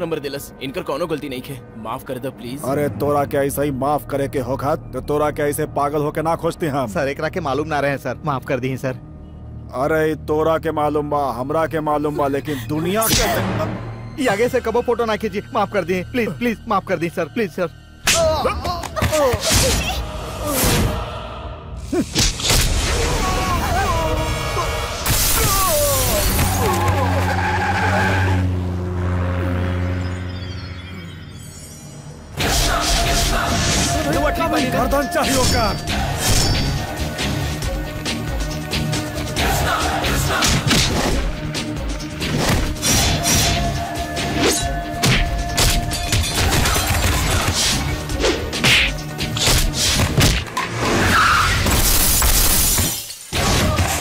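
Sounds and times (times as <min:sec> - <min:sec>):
dramatic background music: 0:00.0 - 0:54.0
glass breaking and debris scattering: 0:25.1 - 0:26.8, 0:51.7 - 0:53.4.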